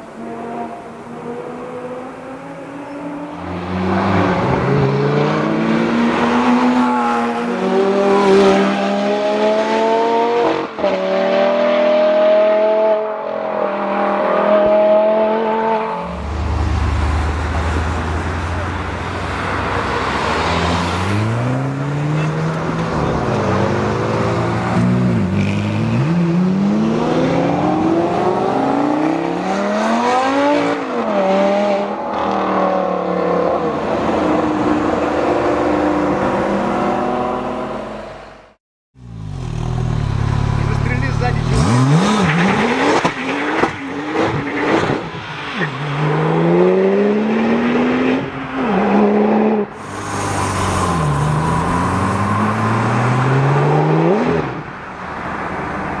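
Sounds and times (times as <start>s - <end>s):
sports car engine revving: 39.1s - 44.6s.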